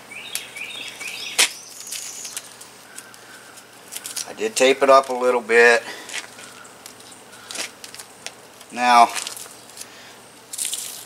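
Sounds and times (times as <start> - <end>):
birds chirping: 0.0 - 10.4.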